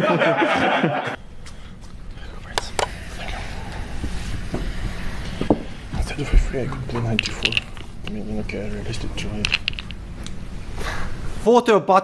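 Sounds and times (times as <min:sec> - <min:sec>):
low room rumble: 0:00.0 - 0:11.5.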